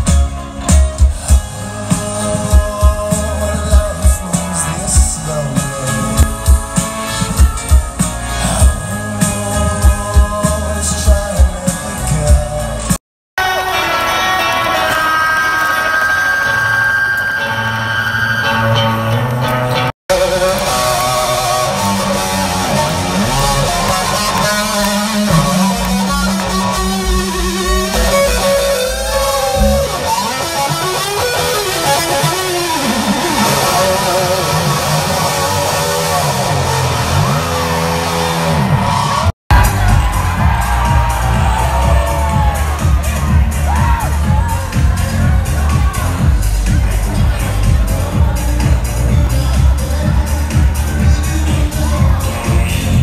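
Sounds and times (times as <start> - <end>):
live rock band playing loud: 0.0 - 17.5, 18.5 - 53.0.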